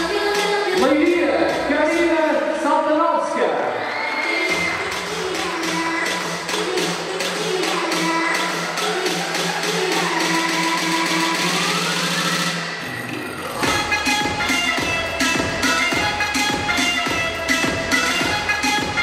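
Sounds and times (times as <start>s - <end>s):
upbeat electronic dance music: 0.0s - 19.0s
heavy bass drum beat: 13.4s - 19.0s.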